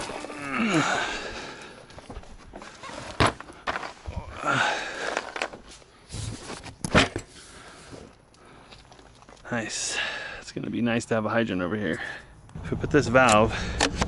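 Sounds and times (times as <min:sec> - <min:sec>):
footsteps on dirt and gravel: 0:01.5 - 0:04.1.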